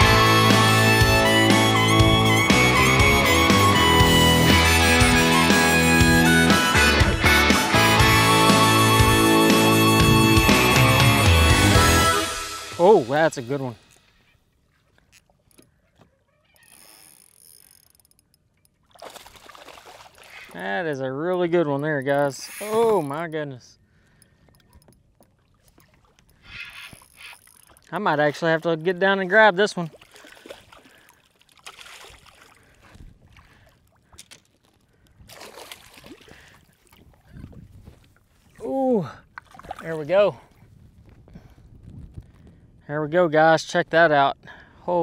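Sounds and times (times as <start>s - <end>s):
water lapping on boat hull: 14.0s - 41.2s
water rushing and splashing: 18.9s - 20.7s, 29.8s - 33.7s.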